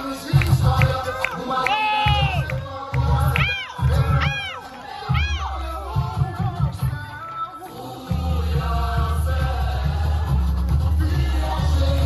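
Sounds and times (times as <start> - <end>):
samba music: 0.0 - 12.0
deep bass drum beats: 0.3 - 1.1, 1.9 - 7.2, 8.1 - 12.0
crowd whooping shouts: 1.5 - 2.5, 3.3 - 5.6.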